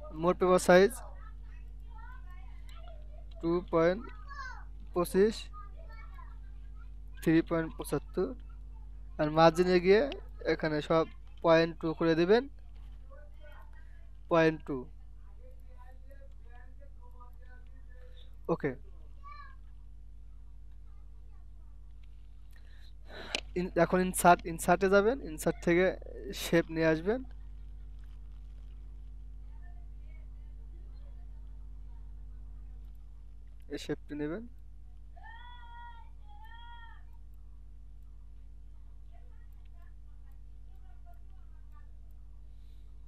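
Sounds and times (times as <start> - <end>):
low electrical hum: 0.0 - 43.0.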